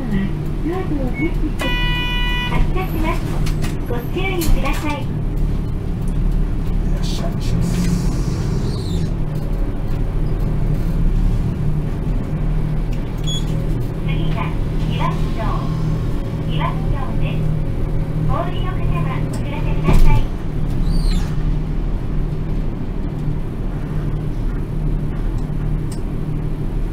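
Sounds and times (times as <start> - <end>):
bus engine and road noise: 0.0 - 26.9
faint voices: 6.7 - 9.2.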